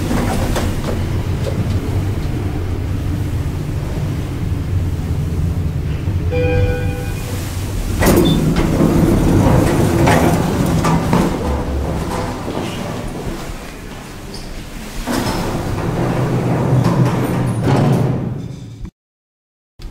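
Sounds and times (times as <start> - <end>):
elevator doors sliding open: 0.0 - 18.9
elevator humming: 0.0 - 18.9
elevator arrival chime: 5.9 - 12.9.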